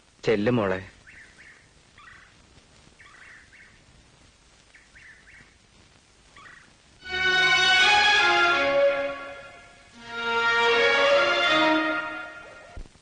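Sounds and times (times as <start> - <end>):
low hiss: 0.0 - 13.0
faint bird calls: 1.0 - 3.9, 4.6 - 5.6, 6.3 - 6.8.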